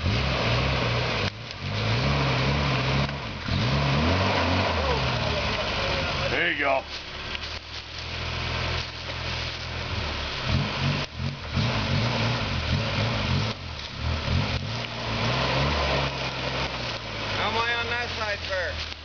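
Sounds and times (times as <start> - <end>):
truck engine working at low speed: 0.0 - 19.0.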